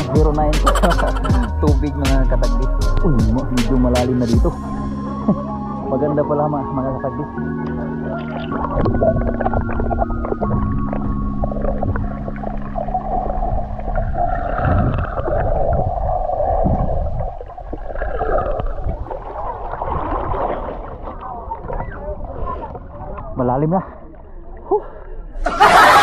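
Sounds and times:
water churning and bubbling underwater: 4.4s - 25.4s
low rumble: 7.9s - 23.4s.

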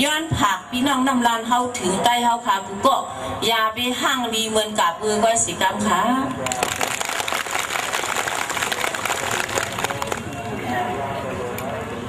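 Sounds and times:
audience applauding: 6.4s - 10.4s.

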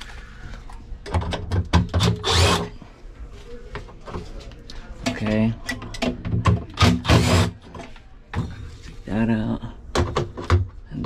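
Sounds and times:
cordless drill running: 2.2s - 2.7s.

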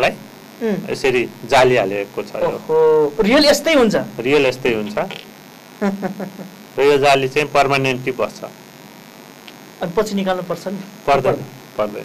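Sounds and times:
man speaking: 0.0s - 0.2s, 0.8s - 5.2s, 6.8s - 8.5s, 11.1s - 12.0s
faint electrical hum: 0.0s - 12.0s.

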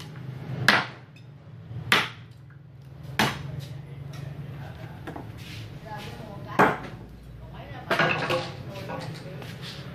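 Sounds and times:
machete chopping wood: 0.6s - 1.1s, 1.8s - 2.3s, 3.1s - 3.6s.

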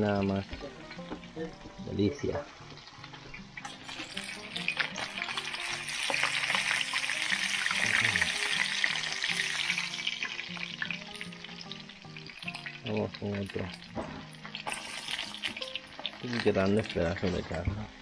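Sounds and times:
fish sizzling in hot oil: 0.0s - 18.0s
fork scraping in a pan: 3.6s - 6.9s, 14.6s - 15.7s.

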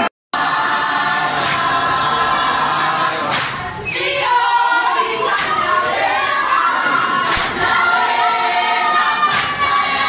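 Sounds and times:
choir singing unaccompanied: 0.0s - 10.0s.

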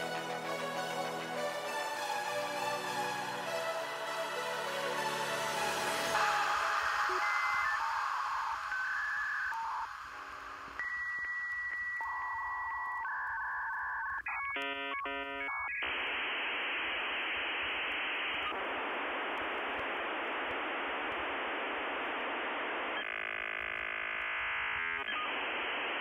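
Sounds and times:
electronic telephone beeps: 6.8s - 15.9s.

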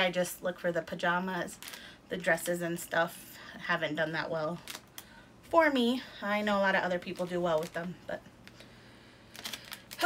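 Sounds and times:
cellophane bag crackling: 4.4s - 5.0s, 6.4s - 8.6s, 9.3s - 10.0s.

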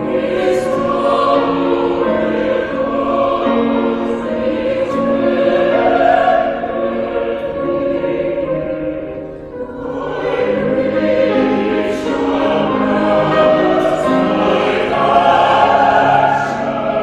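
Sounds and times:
choir singing held chords: 0.0s - 17.0s.

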